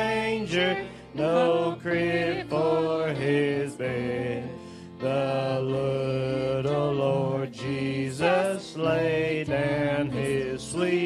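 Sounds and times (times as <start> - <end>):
group singing worship song: 0.0 - 11.0.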